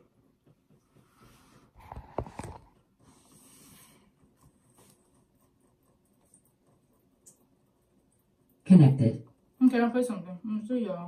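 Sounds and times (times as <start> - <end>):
soft rustle: 0.7 - 6.4.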